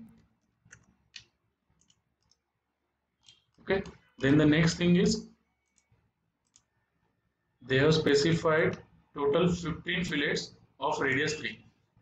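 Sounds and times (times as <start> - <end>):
computer mouse clicks: 0.1 - 2.5, 3.2 - 4.0, 5.6 - 6.8.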